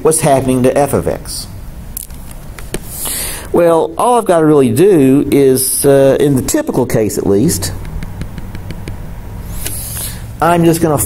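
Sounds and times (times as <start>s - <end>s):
low background hum: 0.0s - 11.0s
stylus tapping on screen: 7.8s - 9.8s
short hiss: 9.4s - 10.3s.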